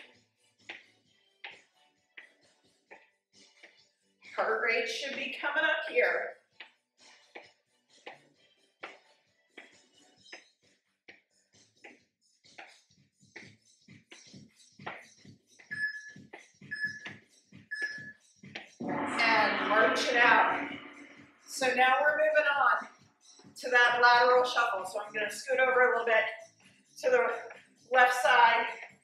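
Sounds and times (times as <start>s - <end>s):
short beeps: 18.8s - 21.6s.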